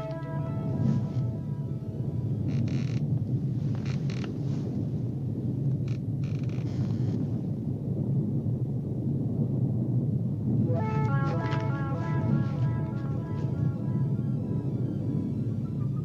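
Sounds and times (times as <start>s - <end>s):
low rumbling drone: 0.0s - 6.2s, 7.3s - 16.0s.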